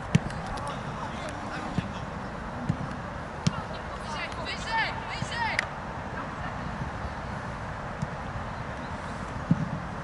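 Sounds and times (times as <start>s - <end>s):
players shouting: 3.4s - 6.5s.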